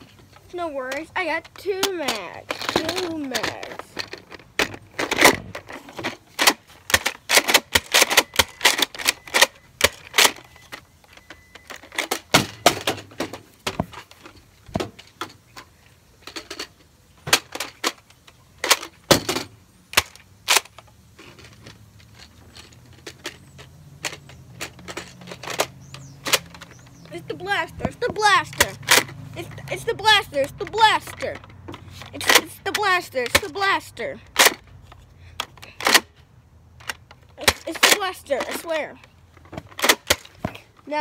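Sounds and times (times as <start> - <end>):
plastic toy blaster clicks: 6.4 - 10.4.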